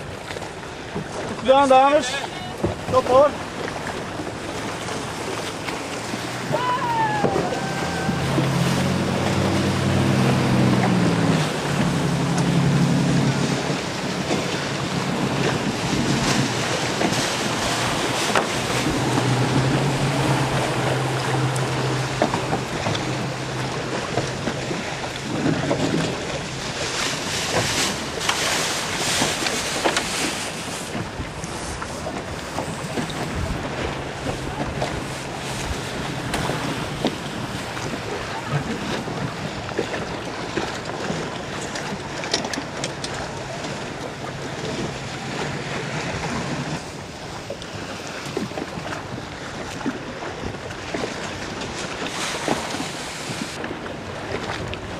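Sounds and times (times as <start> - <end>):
water splashing and rushing: 0.0 - 54.9
wind buffeting microphone: 2.2 - 54.9
low motor hum: 3.5 - 26.9.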